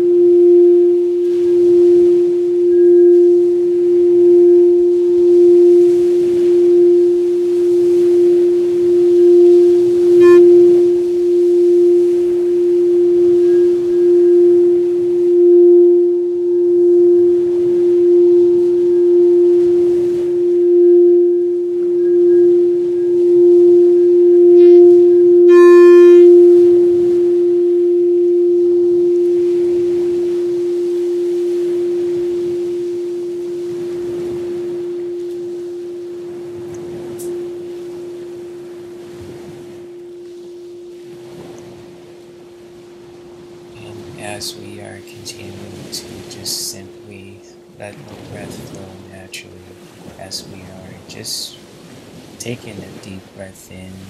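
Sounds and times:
bright ringing tone: 0.0s - 50.6s
singing bowl drone: 0.0s - 50.7s.

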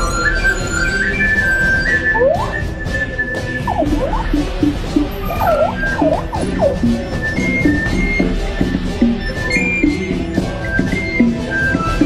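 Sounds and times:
background music with swooping notes: 0.0s - 12.0s.

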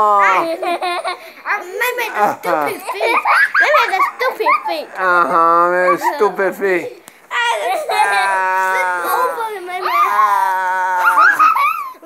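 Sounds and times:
person howling: 7.9s - 11.7s.

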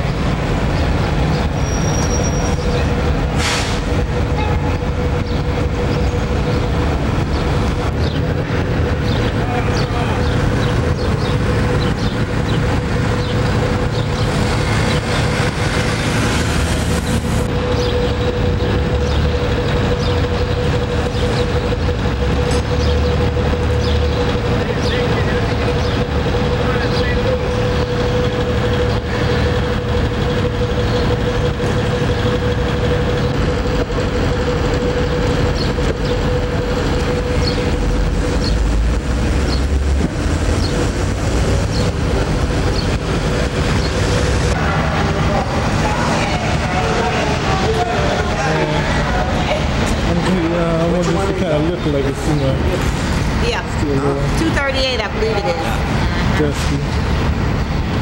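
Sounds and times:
street noise: 0.0s - 58.0s
truck engines idling: 0.0s - 58.0s
constant droning tone: 4.0s - 58.0s.

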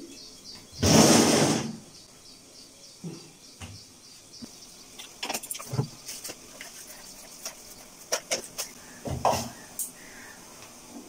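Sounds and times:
kitchen things clicking and knocking: 5.0s - 10.0s.

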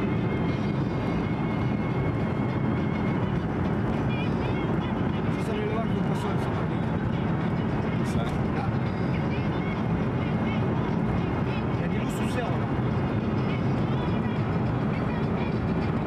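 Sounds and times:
car engine and tyre noise: 0.0s - 16.0s.

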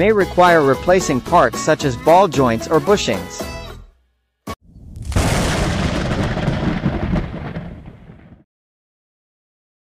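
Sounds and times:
explosion boom with rumbling tail: 4.6s - 8.4s.

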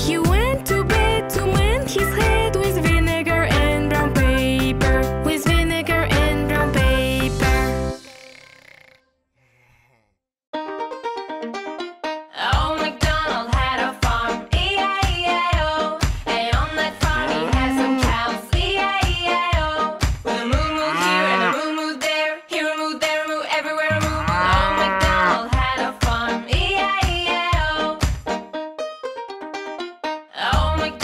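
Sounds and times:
children's music: 0.0s - 8.5s, 10.6s - 31.0s
breathy sigh: 8.0s - 10.2s
cow mooing: 17.1s - 18.3s, 20.4s - 21.7s, 23.9s - 25.4s.

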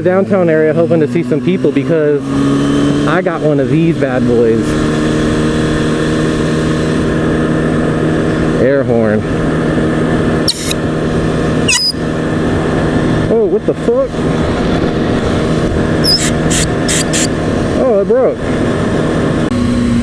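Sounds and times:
motorcycle engine running: 0.0s - 20.0s
wind noise: 9.4s - 19.5s
short high hisses: 10.5s - 10.8s, 16.1s - 17.3s.

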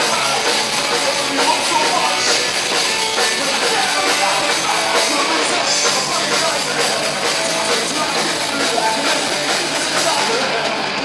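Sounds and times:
drum kit: 0.0s - 11.0s
electric guitars: 0.0s - 11.0s
singer singing into microphone: 0.0s - 11.0s.

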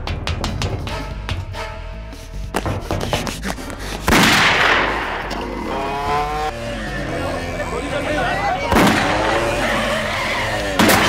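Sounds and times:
sharp knocks: 0.0s - 1.5s, 2.5s - 5.4s
tense film score with held tones: 0.0s - 11.0s.

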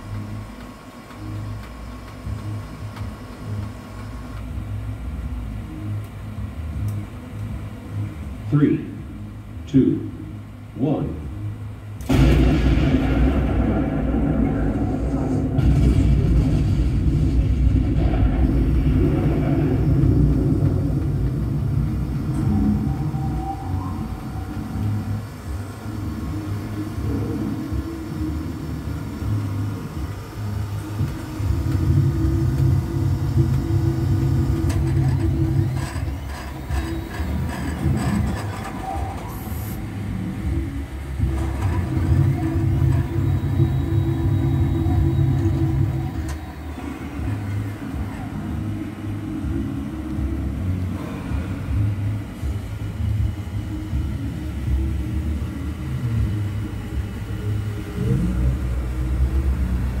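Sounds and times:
deep rumbling: 12.0s - 60.0s.

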